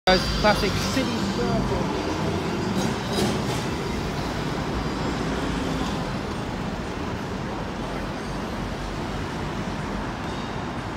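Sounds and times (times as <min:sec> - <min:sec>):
cars driving past: 0:00.1 - 0:10.9
tram moving off: 0:00.1 - 0:10.9.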